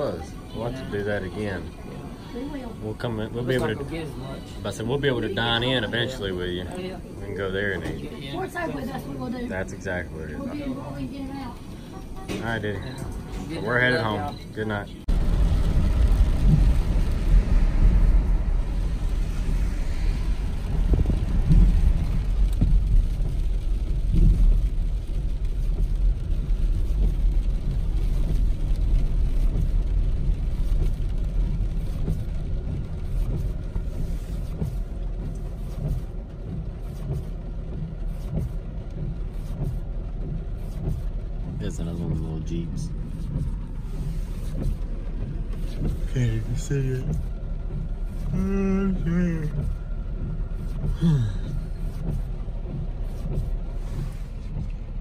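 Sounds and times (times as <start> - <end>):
car driving on wet road: 0.0 - 55.0.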